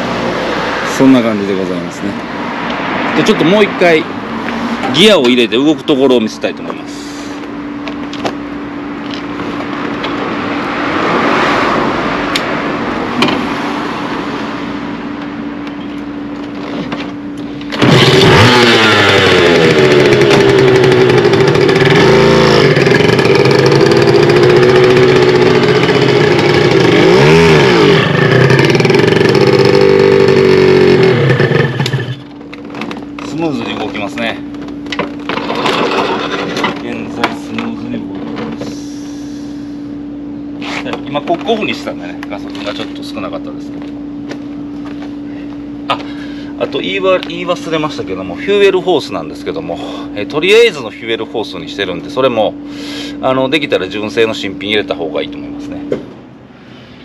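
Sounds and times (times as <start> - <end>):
motorcycle engine revving: 17.6 - 37.4.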